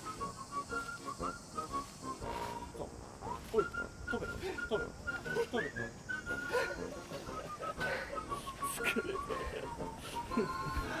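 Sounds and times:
whistle-like melody: 0.0 - 11.0.

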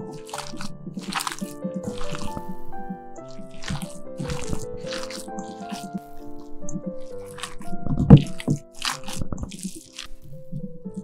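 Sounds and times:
hands squelching wet meat: 0.0 - 11.0
piano music: 0.0 - 11.0.

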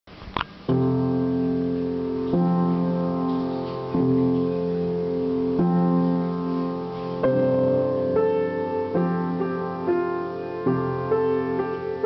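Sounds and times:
piano chords: 0.5 - 12.0.

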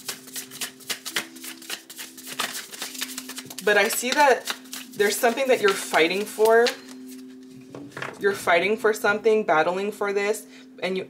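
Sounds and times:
cards being shuffled by hand: 0.0 - 7.4.

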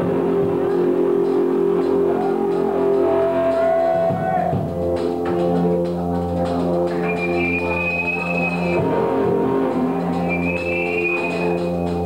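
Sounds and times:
cymbal ticks: 0.0 - 12.0
live band playing slow chord: 0.0 - 12.0
long high notes: 0.0 - 12.0.

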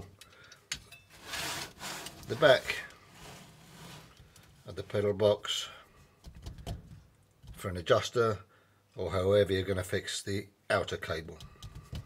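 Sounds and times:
metal scraping across surface: 1.1 - 4.2.

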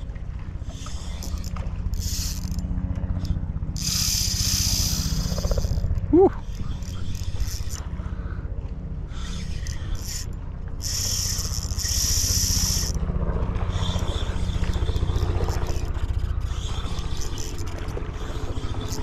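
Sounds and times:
fishing reel whirring: 0.0 - 19.0
low hum: 0.0 - 19.0.

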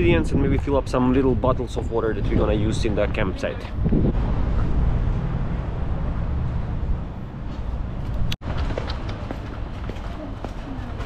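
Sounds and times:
wind rumbling on microphone: 0.0 - 10.1
road traffic: 0.7 - 11.0.

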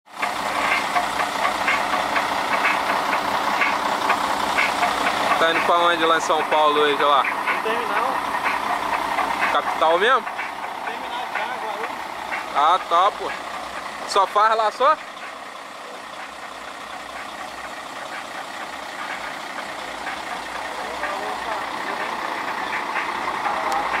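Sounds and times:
diesel truck engine idling: 0.1 - 24.0
regular ticking: 0.1 - 24.0.

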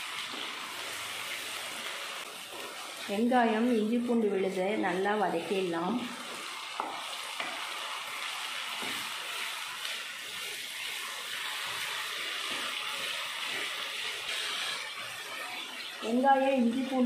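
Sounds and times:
onions sizzling in hot oil: 0.0 - 17.0.

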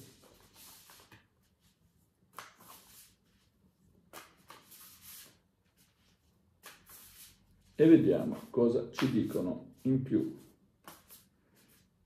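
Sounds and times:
cards being shuffled: 0.0 - 1.3, 2.3 - 3.2, 4.1 - 7.4, 8.1 - 11.9.

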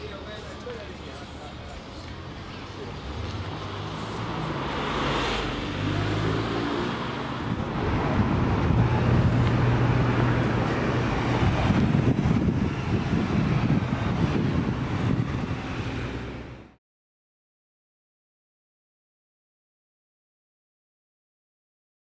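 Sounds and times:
street traffic: 0.0 - 16.8.

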